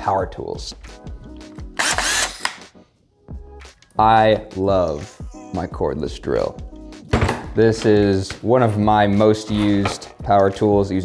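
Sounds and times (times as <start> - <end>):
quiet background music: 0.0 - 11.0
power tool motor whir: 1.8 - 2.6.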